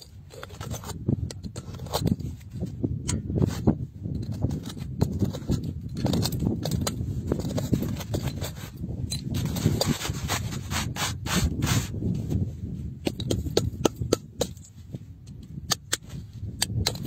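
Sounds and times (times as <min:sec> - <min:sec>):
metal chisel scraping stone: 0:00.1 - 0:02.4, 0:03.1 - 0:12.0.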